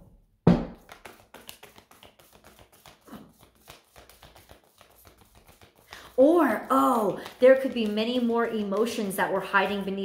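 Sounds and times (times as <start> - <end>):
cards being shuffled: 0.8 - 10.0.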